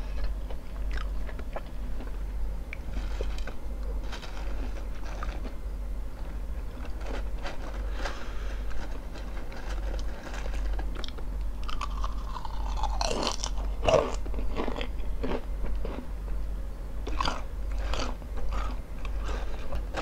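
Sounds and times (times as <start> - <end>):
crunching potato chips: 0.0 - 5.6, 6.2 - 16.1, 17.0 - 20.0.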